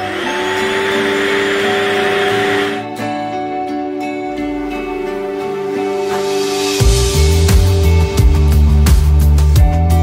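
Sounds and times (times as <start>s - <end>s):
vacuum cleaner motor running: 0.0s - 2.8s
soft background music: 0.0s - 10.0s.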